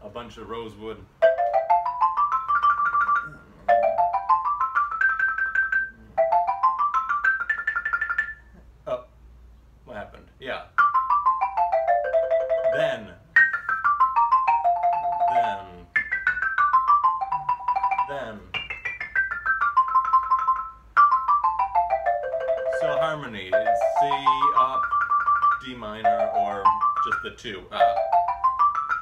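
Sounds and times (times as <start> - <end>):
xylophone double stops: 20.4 - 25.0.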